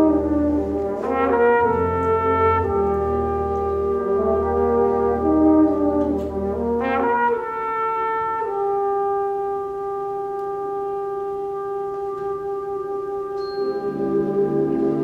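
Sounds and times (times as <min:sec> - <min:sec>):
solo trumpet: 0:00.0 - 0:15.0.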